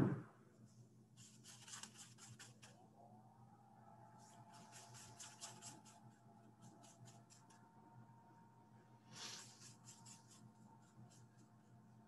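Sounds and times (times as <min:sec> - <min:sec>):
low hum: 0:00.0 - 0:01.0, 0:02.7 - 0:12.0
paintbrush scratching on canvas: 0:01.2 - 0:02.8, 0:04.3 - 0:07.6, 0:09.2 - 0:11.5.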